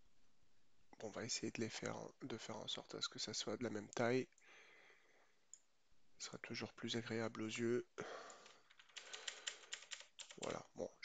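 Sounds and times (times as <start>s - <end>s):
keyboard keys clicking: 8.7s - 10.6s.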